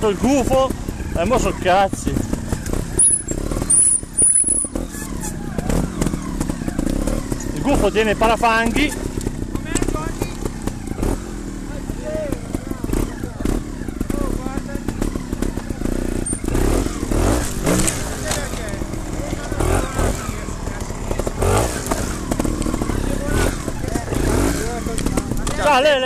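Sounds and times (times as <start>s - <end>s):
motorcycle engine running: 0.0s - 26.0s
voices talking: 0.0s - 26.0s.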